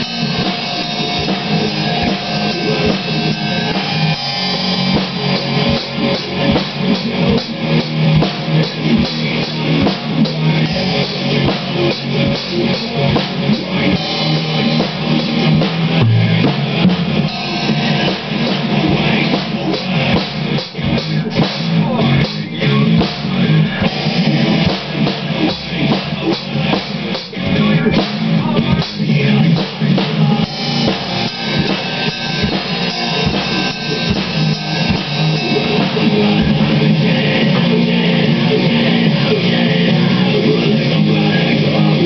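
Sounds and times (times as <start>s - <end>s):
drum kit playing: 0.0s - 42.0s
hard rock music with electric guitar: 0.0s - 42.0s.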